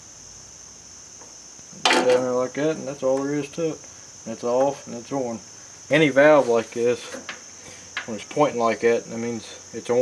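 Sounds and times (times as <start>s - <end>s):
crickets chirring: 0.0s - 10.0s.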